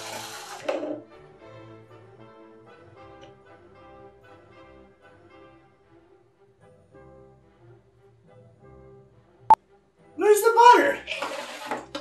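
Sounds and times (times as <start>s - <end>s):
man exclaiming: 10.2s - 11.0s.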